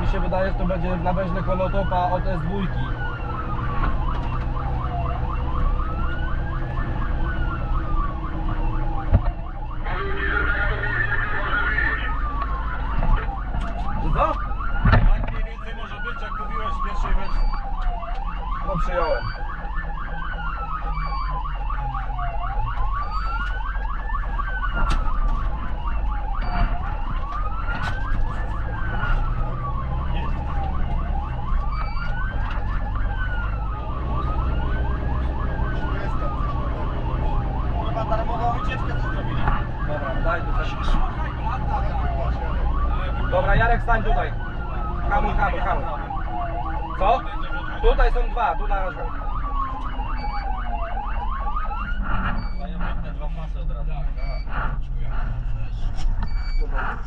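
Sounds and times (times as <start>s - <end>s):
fire engine wail siren: 0.0s - 57.0s
truck engine running: 51.0s - 57.0s.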